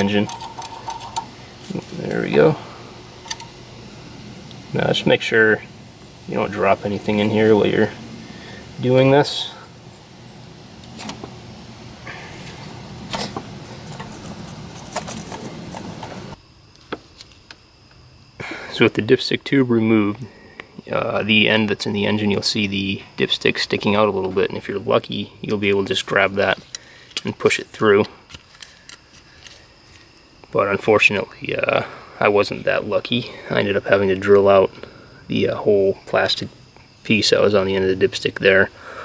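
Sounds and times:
light clicks and rustles of metal tube: 0.0s - 2.4s, 26.5s - 30.6s
steady background hiss: 0.0s - 39.0s
light clicks and knocks of parts: 3.2s - 3.6s, 28.0s - 30.1s.

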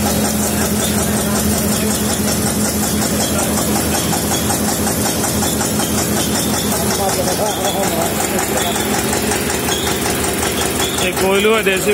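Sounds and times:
oil mill machinery knocking: 0.0s - 11.9s.

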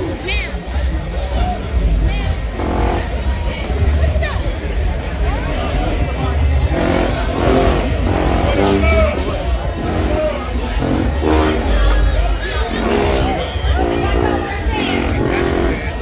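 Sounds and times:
crowd chatter: 0.0s - 16.0s
steady low rumble: 0.0s - 16.0s
marching band sousaphones: 1.8s - 16.0s.

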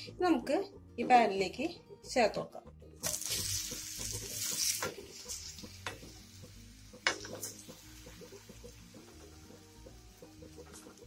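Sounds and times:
banana slices sizzling in pan: 3.0s - 11.0s
spatula clicking against pan: 4.4s - 9.4s.

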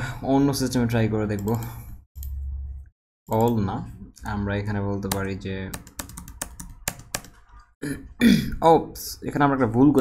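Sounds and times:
computer keys clacking: 5.0s - 7.7s.

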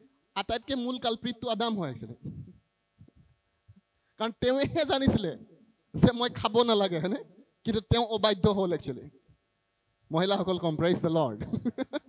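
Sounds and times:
faint low thumps: 2.1s - 3.8s.

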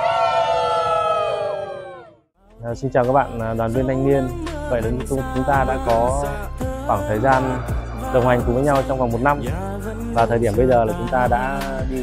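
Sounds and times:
group of young voices cheering: 0.0s - 2.2s.

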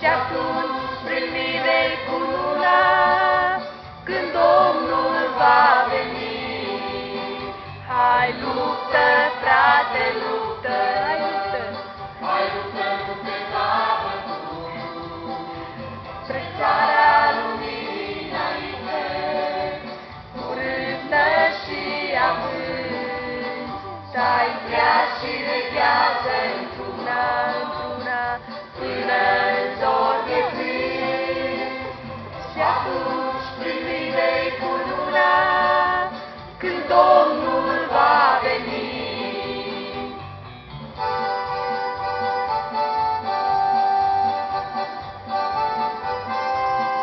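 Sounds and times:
choir singing a hymn: 0.0s - 40.4s
electronic keyboard: 9.5s - 47.0s.

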